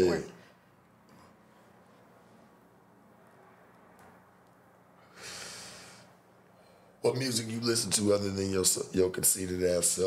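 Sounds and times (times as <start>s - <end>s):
man exhaling smoke: 5.0s - 6.2s.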